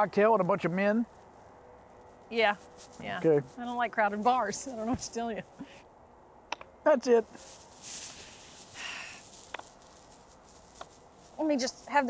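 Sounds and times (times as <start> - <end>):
soft breath or sniff: 5.6 - 5.9, 7.4 - 9.5
brief hiss: 7.3 - 10.9.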